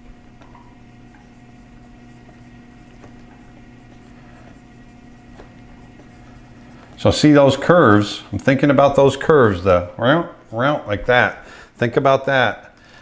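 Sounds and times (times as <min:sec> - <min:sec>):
low electrical hum: 0:00.0 - 0:13.0
stylus scratching on tablet: 0:00.4 - 0:09.6.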